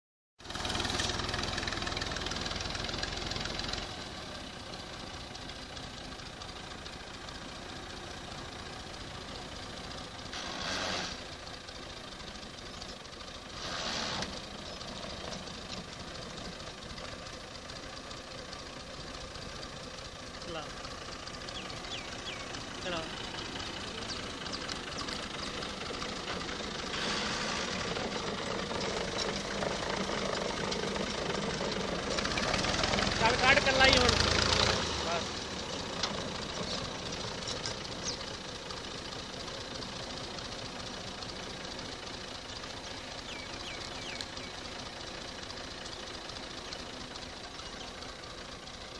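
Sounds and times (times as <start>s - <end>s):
tractor diesel engine running: 0.4s - 48.9s.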